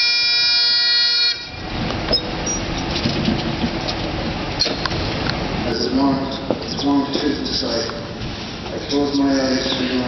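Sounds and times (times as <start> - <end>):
bagpipes chord: 0.0 - 1.6
rushing outdoor background noise: 0.0 - 10.0.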